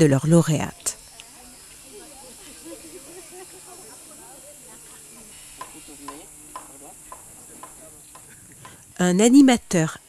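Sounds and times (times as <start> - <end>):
steady hiss: 0.8 - 10.0.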